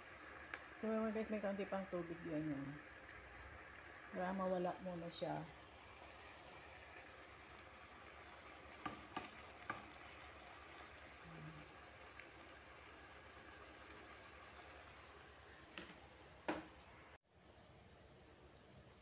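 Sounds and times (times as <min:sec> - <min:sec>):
chicken sizzling in a pan: 0:00.0 - 0:17.1.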